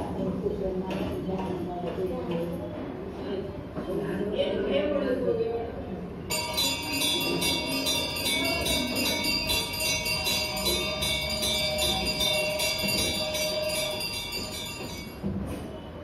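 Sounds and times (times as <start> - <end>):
small metal bells ringing rapidly: 6.3 - 15.3.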